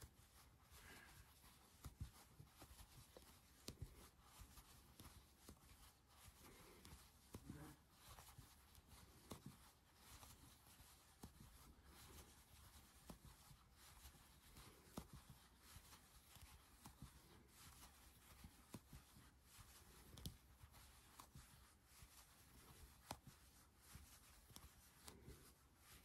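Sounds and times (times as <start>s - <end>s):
yarn scratching: 0.0s - 26.0s.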